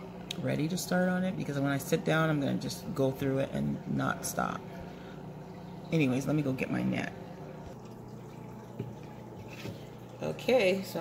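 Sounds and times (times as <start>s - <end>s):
aquarium aeration bubbling: 0.0s - 11.0s.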